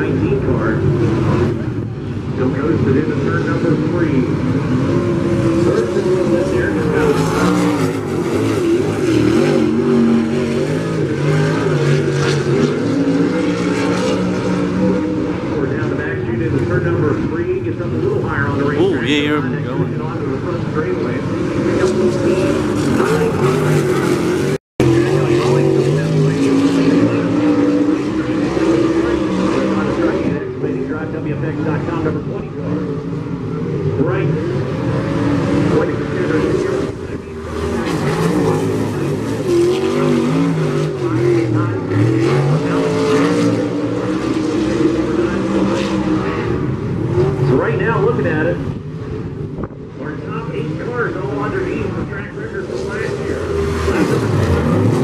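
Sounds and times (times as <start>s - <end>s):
race car engines: 0.0s - 55.0s.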